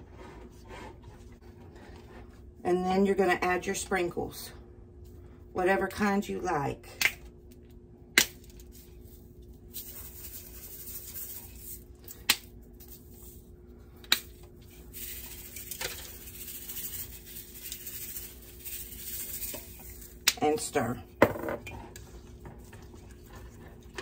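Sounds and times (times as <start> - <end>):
sprinkles rattling: 8.7 - 11.8, 14.7 - 20.3.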